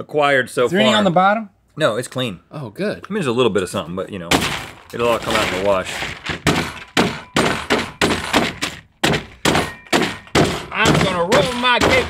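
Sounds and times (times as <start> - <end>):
tool pounding caramel corn: 4.3 - 12.0.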